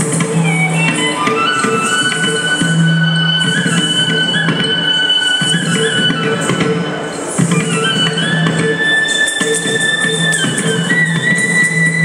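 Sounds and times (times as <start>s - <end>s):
mridangam drum strokes: 0.0s - 12.0s.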